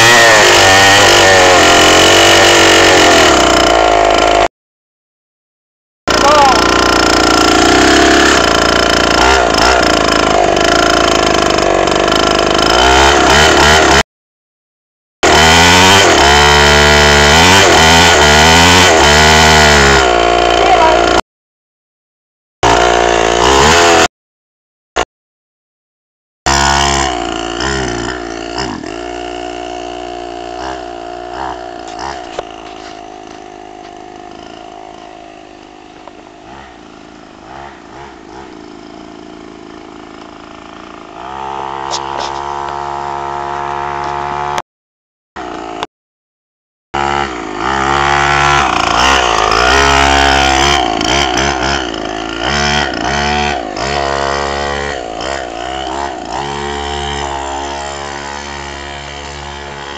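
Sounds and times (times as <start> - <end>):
dirt bike engine revving: 0.0 - 4.5, 6.1 - 14.0, 15.2 - 21.2, 22.6 - 24.1, 26.5 - 44.6, 47.0 - 59.9.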